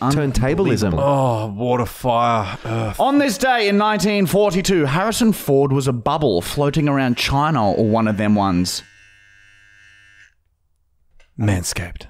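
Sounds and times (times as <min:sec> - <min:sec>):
electric trimmer buzzing: 0:06.8 - 0:10.4.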